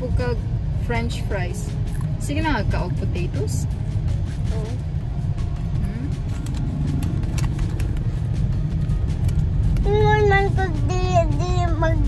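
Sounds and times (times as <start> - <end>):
car engine rumble: 0.0 - 12.0
road noise inside car: 0.0 - 12.0
young child singing: 9.8 - 12.0.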